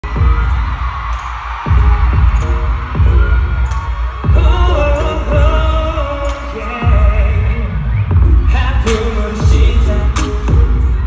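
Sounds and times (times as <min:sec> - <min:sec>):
crowd noise: 0:00.0 - 0:11.0
loud pop music with bass beats: 0:00.0 - 0:11.0.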